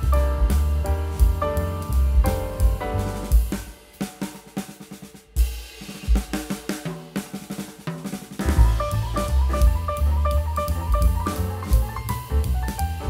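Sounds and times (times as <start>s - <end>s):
heavy bass: 0.0s - 3.8s, 8.4s - 13.0s
instrumental background music: 0.0s - 7.5s, 8.2s - 13.0s
drum kit steady beat: 0.0s - 13.0s.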